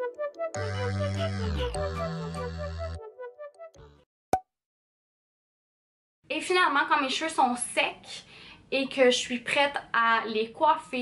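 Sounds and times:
background music: 0.0 - 4.0.

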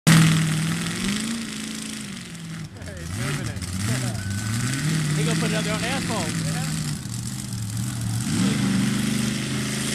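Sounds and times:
monster truck engine running: 0.1 - 9.9.

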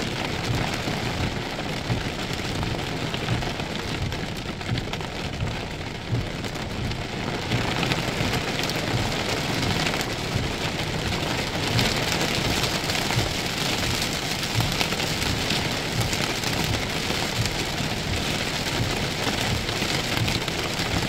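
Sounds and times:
heavy rain on car roof: 0.0 - 21.0.

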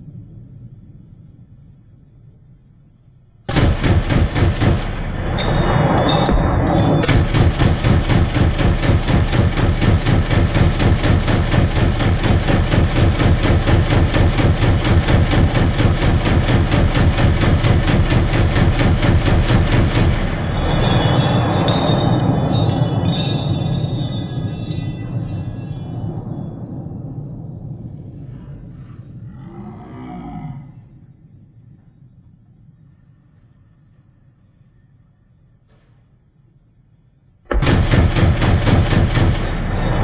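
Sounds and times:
rifle rapid fire: 3.5 - 22.6, 37.5 - 40.0
rumbling gunshot echo: 3.5 - 29.4, 37.5 - 40.0.

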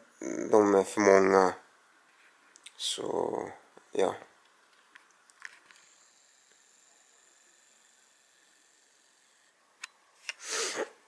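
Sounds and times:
steady high hiss: 0.0 - 11.0.

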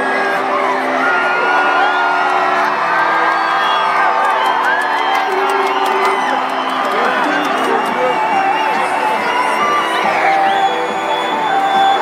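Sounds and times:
crowd whooping and shouting: 0.0 - 12.0
electronic music with synth chords: 0.0 - 12.0.

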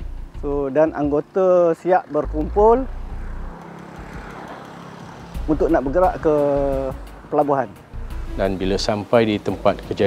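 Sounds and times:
engine rumble: 0.0 - 10.0.

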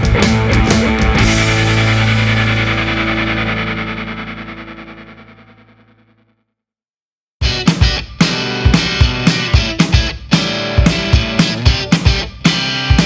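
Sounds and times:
drums: 0.0 - 4.4, 7.4 - 13.0
rock music with distorted guitar: 0.0 - 6.0, 7.4 - 13.0
guitar chord ringing out: 0.0 - 6.1.

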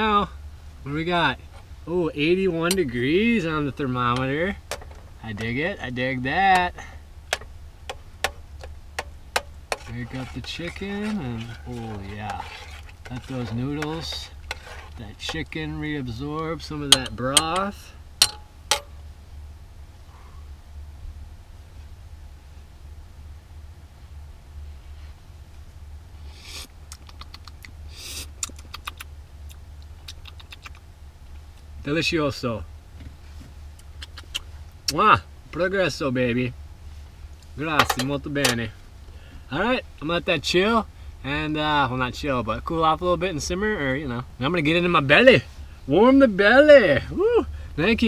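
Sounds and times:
low steady hum: 0.0 - 48.0
metal spoon clinking on pot: 16.9 - 18.9.

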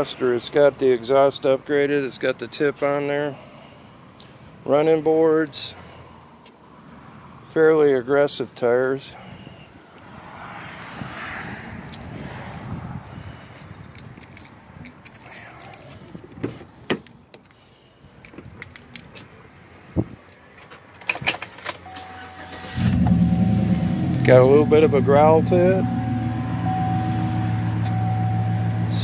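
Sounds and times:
handling noises and key clicks: 13.8 - 17.6, 18.2 - 22.1
truck engine starting and idling: 21.0 - 29.0
steady chime: 21.9 - 29.0.

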